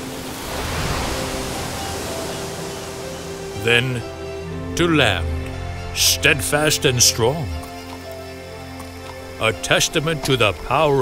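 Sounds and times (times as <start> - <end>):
faint soft music: 0.0 - 11.0
sea waves crashing: 0.0 - 11.0.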